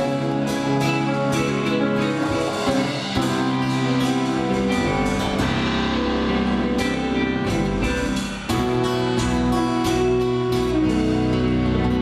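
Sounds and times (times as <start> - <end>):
electric guitar: 0.0 - 12.0
keyboard: 0.0 - 12.0.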